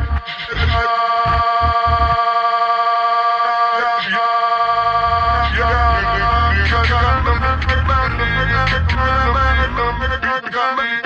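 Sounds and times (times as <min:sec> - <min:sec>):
sustained music chord: 0:04.5 - 0:10.2.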